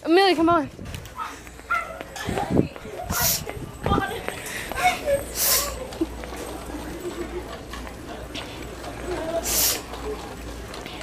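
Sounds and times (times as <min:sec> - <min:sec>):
movement noise: 0:00.7 - 0:11.0.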